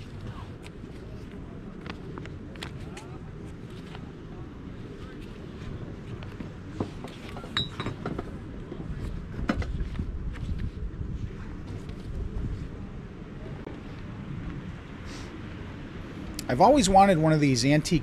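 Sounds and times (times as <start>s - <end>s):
open-air background rumble: 0.0s - 18.0s.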